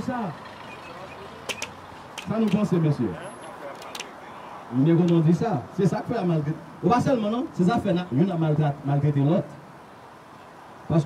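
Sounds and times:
road traffic hum: 0.0 - 11.0
sharp clicks: 1.4 - 2.7, 3.7 - 4.2.

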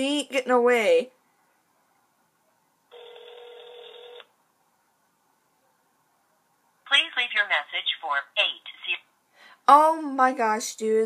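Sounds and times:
telephone ringback tone: 2.9 - 4.3.

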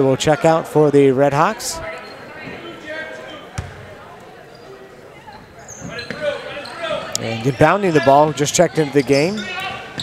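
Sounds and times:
murmur of spectators: 0.0 - 10.0
basketball bouncing on wooden floor: 3.6 - 3.8.

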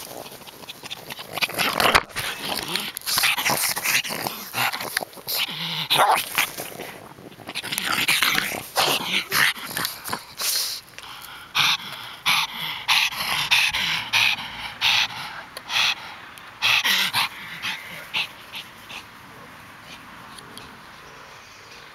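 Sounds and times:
dog breathing hard: 0.0 - 20.2.

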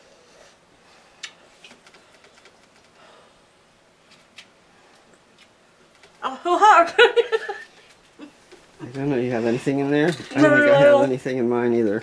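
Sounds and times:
soft breaths: 0.0 - 5.3.

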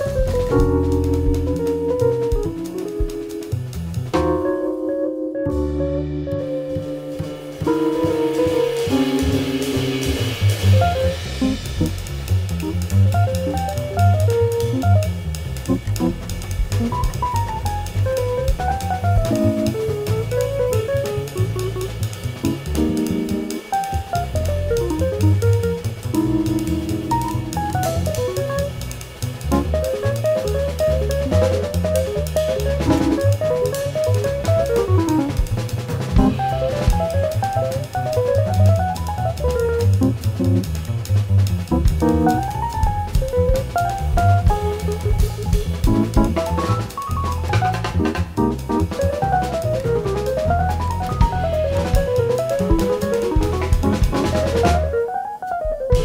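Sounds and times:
bass line: 0.0 - 56.0
drum kit with cymbals: 0.0 - 56.0
fast melodic lines: 0.0 - 56.0.

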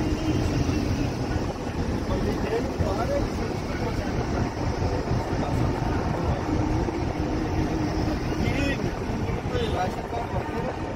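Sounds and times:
wind and road noise from car: 0.0 - 10.9.

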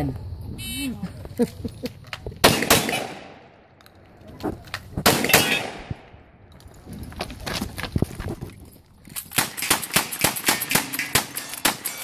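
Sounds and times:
shotgun shots with echo: 2.4 - 3.5, 5.0 - 6.1.

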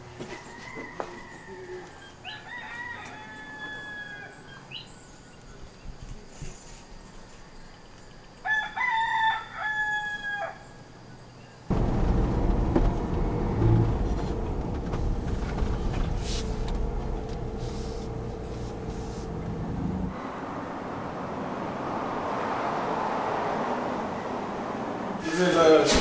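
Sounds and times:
rooster crowing: 0.3 - 4.6, 8.4 - 10.7
car road and engine noise: 11.7 - 26.0.

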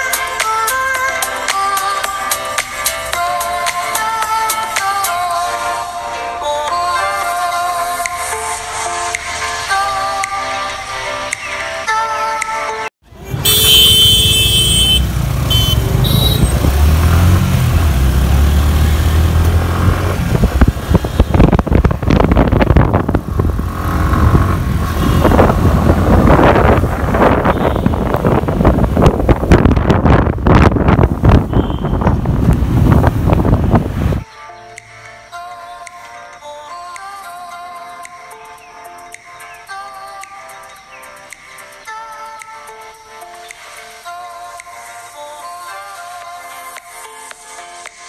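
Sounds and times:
motorcycle engine rumble: 13.1 - 34.2
wind buffeting microphone: 19.2 - 34.2.

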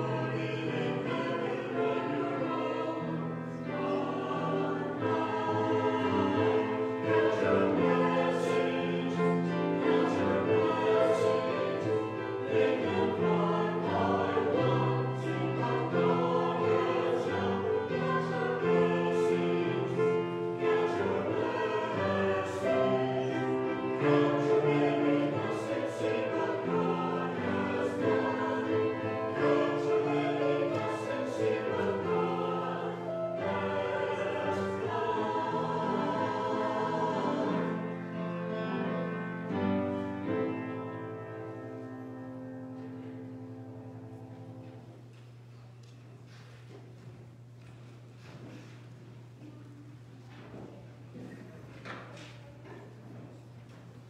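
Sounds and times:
choir singing held chords: 0.0 - 44.8.

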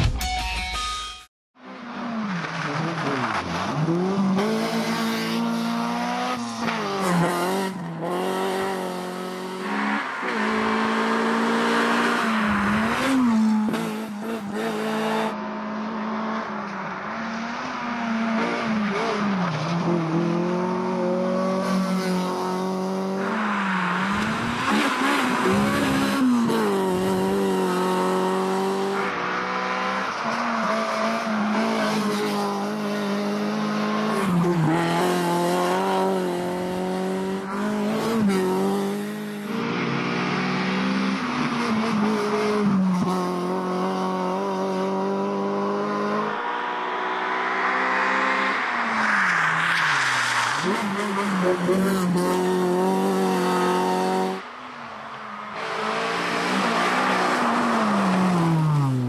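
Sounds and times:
rally car engines revving: 1.6 - 59.0.

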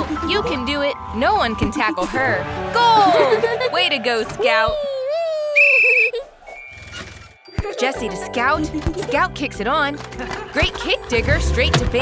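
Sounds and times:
children's background music: 0.0 - 5.1, 7.5 - 12.0.

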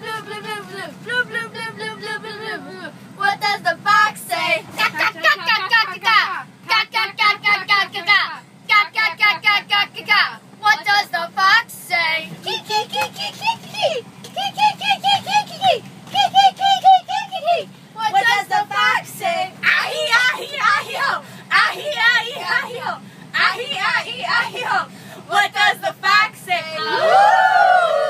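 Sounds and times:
children singing and chanting: 0.0 - 8.2, 11.9 - 27.9
bus engine drone: 0.0 - 28.0.

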